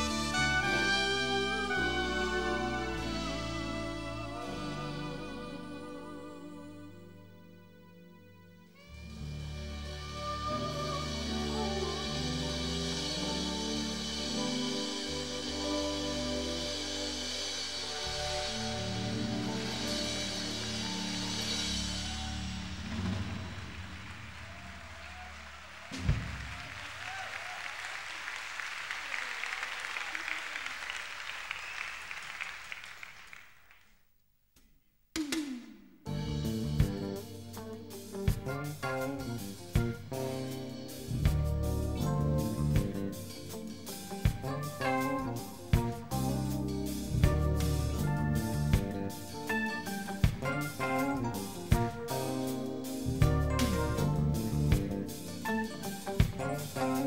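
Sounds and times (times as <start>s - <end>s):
live jazz-pop band: 0.0s - 7.7s, 8.7s - 25.2s, 36.1s - 57.0s
soprano saxophone sustained note: 0.0s - 14.2s
bass: 0.0s - 27.2s, 36.0s - 57.0s
audience applauding: 19.4s - 34.0s.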